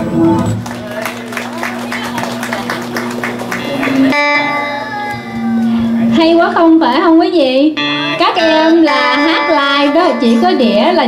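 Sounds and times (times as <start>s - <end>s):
live band with strummed guitar: 0.0s - 11.0s.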